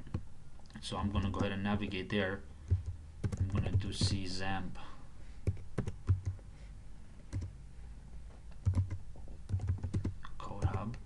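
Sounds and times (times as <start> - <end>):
typing on computer keyboard: 2.7 - 4.2, 8.6 - 11.0.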